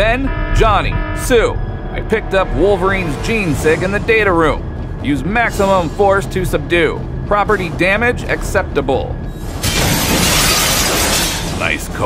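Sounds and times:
background music: 0.0s - 12.0s
debris crashing and shattering: 9.4s - 12.0s.

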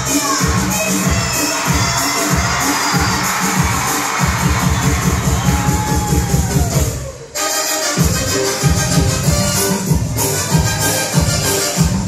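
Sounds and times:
crowd cheering and shouting: 0.0s - 7.4s
loud dance music: 0.0s - 12.0s.

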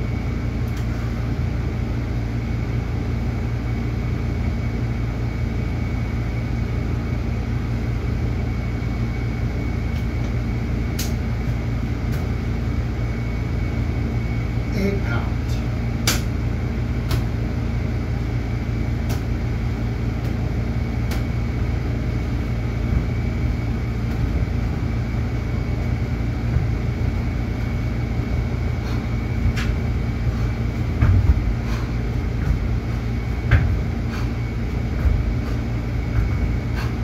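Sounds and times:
machine hum with high whine: 0.0s - 37.0s
dull thumps: 22.2s - 37.0s.

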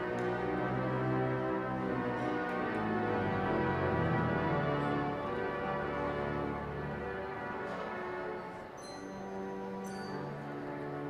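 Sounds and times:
pipe organ playing chords: 0.0s - 11.0s.

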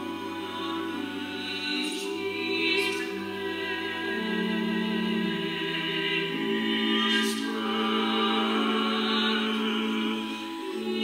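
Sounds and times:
vocal ensemble singing chords: 0.0s - 11.0s.

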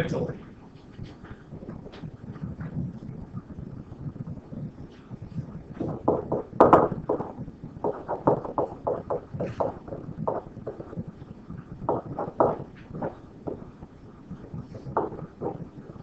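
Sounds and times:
stylus tapping and scratching on screen: 0.4s - 16.0s.

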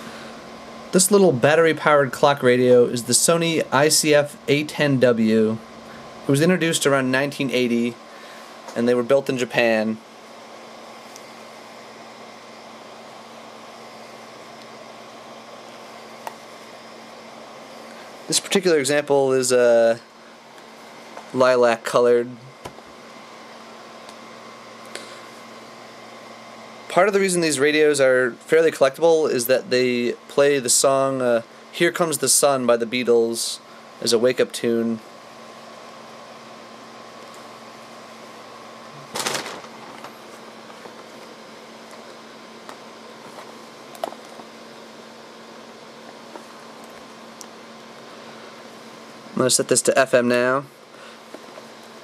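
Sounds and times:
faint hum: 0.0s - 52.0s.

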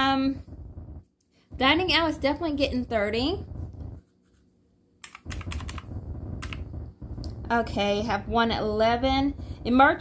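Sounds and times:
calculator keys clicking: 5.0s - 6.6s.

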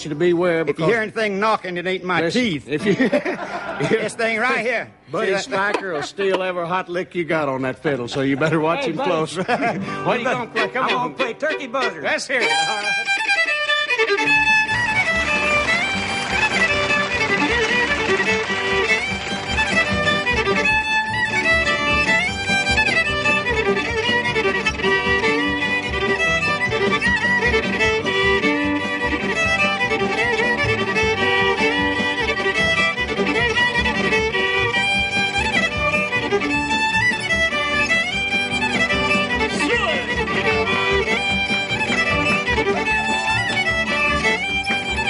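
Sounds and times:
country fiddle tune on violin: 0.0s - 4.6s, 7.5s - 45.0s
guitar backing: 0.0s - 45.0s.

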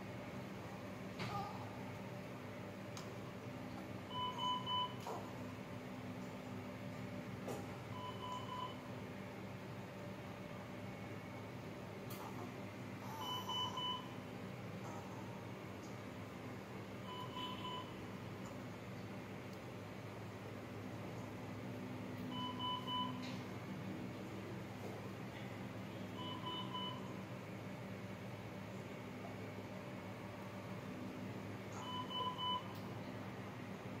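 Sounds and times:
low equipment hum: 0.0s - 34.0s
short electronic beeps: 17.1s - 17.9s.

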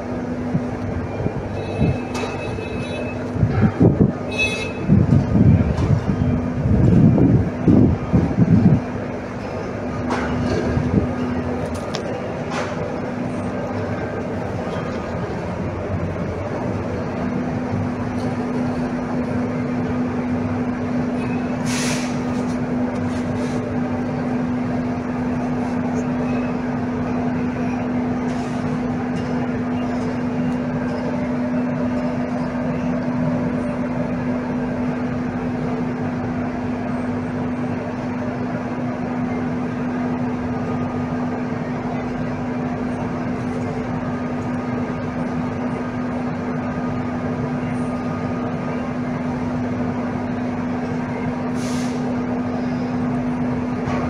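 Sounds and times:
mechanical drone with low hum: 0.0s - 54.0s.

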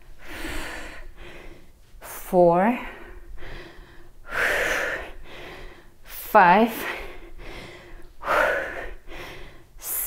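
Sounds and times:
woman breathing hard: 0.0s - 10.0s.

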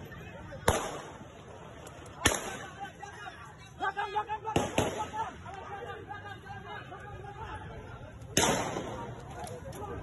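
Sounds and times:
crowd voices chattering: 0.0s - 10.0s
gunshot crack with echo: 0.6s - 1.2s, 2.2s - 2.6s, 4.5s - 5.2s, 8.4s - 9.1s.

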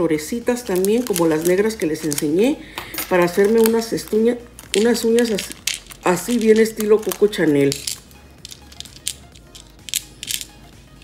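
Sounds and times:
small charms clicking on hard lid: 0.6s - 10.7s.

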